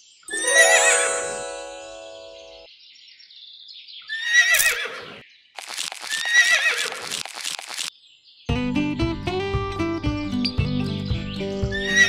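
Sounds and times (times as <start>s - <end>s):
music: 0.3s - 2.7s, 8.5s - 12.0s
horse whinnying: 4.1s - 5.2s, 6.1s - 7.1s, 11.8s - 12.0s.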